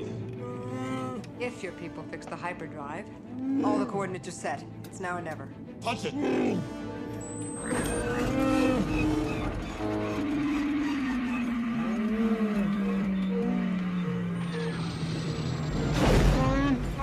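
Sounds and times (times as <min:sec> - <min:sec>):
orchestral music: 0:00.0 - 0:17.0
long falling whine: 0:07.2 - 0:15.8
creature roaring: 0:07.8 - 0:17.0.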